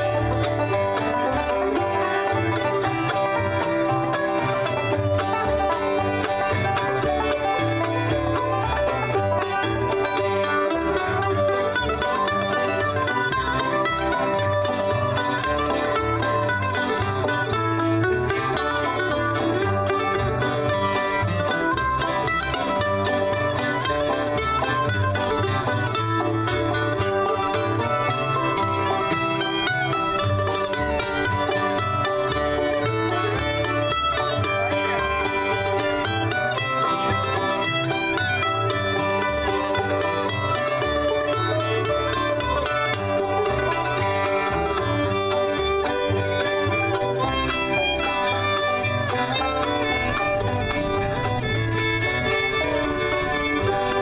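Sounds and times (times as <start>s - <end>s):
bluegrass band playing: 0.0s - 54.0s
plucked bass pulse: 0.0s - 54.0s.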